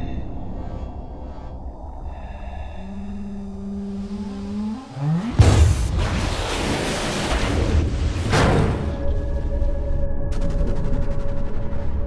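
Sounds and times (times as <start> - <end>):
sustained low tone: 0.0 - 5.3
deep rumble: 0.0 - 12.0
rising pitch riser: 3.1 - 7.4.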